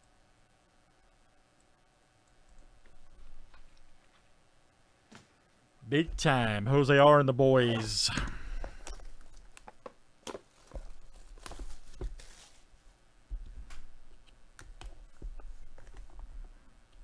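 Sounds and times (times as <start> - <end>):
person sighing: 7.8 - 9.0
plastic wrap crinkling and tearing: 10.3 - 12.7.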